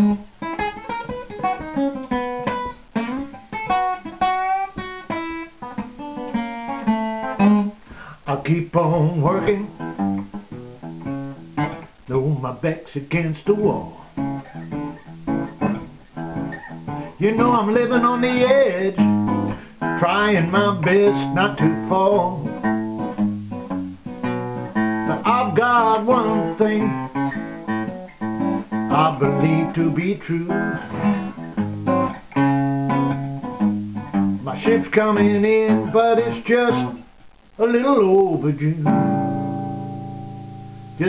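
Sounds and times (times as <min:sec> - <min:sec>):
acoustic guitar chords: 0:00.0 - 0:41.0
man singing: 0:08.1 - 0:09.9, 0:12.1 - 0:14.2, 0:17.1 - 0:22.7, 0:25.0 - 0:27.2, 0:28.7 - 0:31.4, 0:34.4 - 0:39.3.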